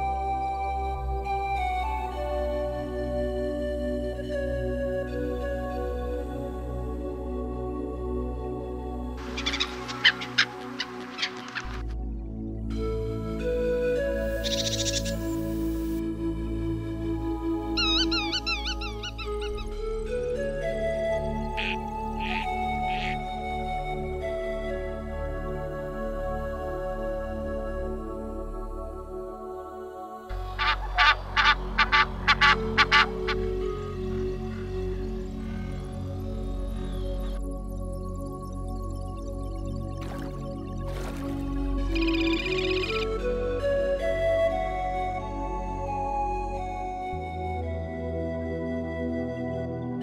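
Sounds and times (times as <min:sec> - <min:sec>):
background music: 0:00.0 - 0:50.0
gulls calling: 0:09.2 - 0:12.0, 0:14.0 - 0:15.9, 0:17.6 - 0:23.4, 0:30.3 - 0:37.4, 0:40.0 - 0:43.5
goose honking: 0:30.6 - 0:33.5.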